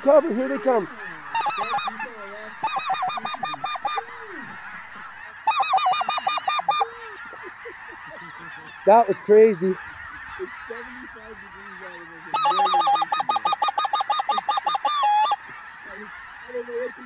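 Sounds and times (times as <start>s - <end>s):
geese calling: 0.0s - 17.0s.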